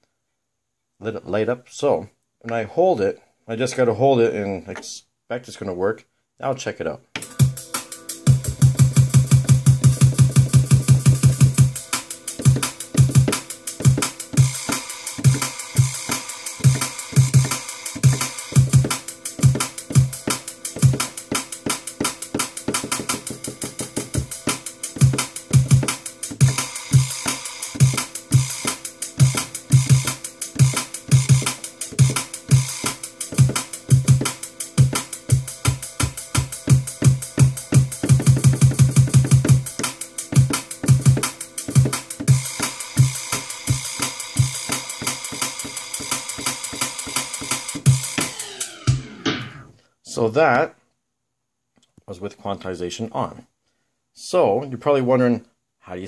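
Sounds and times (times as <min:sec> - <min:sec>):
drum and bass beat: 0:07.2 - 0:49.6.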